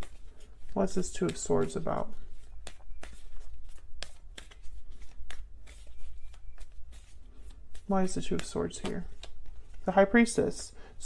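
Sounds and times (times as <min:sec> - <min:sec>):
cards being shuffled: 0:00.0 - 0:10.7.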